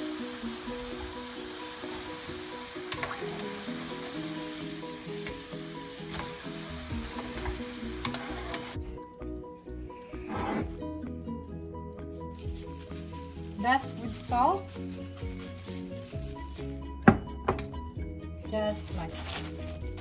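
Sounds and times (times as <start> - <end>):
hot oil sizzling in a pan: 0.0 - 8.8
background music: 0.0 - 20.0.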